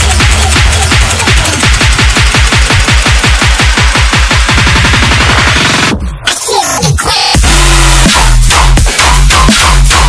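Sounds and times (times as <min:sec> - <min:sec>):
rapid kick-drum roll: 0:00.0 - 0:06.0, 0:07.4 - 0:10.0
electronic dance music: 0:00.0 - 0:10.0.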